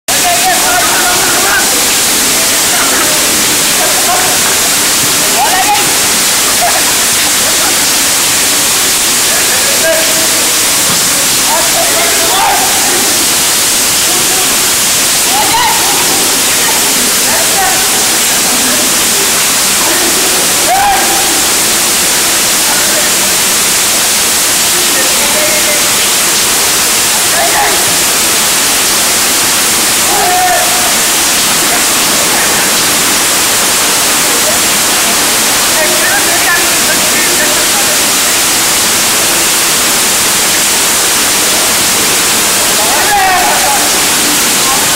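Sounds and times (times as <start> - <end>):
heavy rain falling: 0.0 - 44.9
people shouting: 2.6 - 7.1, 11.5 - 13.3, 14.0 - 19.0, 19.8 - 21.7, 27.2 - 28.4, 29.9 - 34.7, 42.8 - 44.9.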